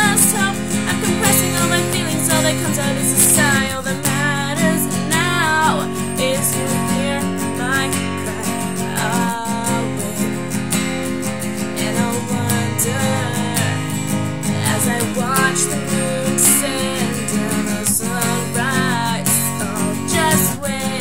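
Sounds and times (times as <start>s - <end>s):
acoustic guitar strumming: 0.0s - 21.0s
woman singing: 0.0s - 21.0s.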